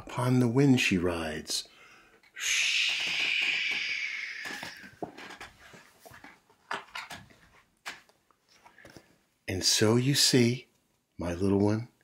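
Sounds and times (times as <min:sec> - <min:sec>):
person shushing: 0:02.4 - 0:05.0
book rustling and knocking: 0:04.5 - 0:08.1.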